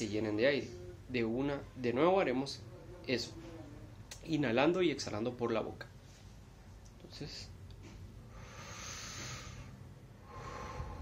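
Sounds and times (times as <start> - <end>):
man breathing deeply: 8.2 - 11.0.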